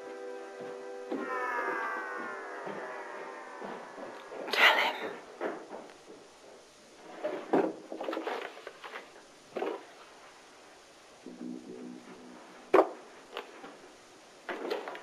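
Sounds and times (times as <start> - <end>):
musical chord: 11.3 - 12.7.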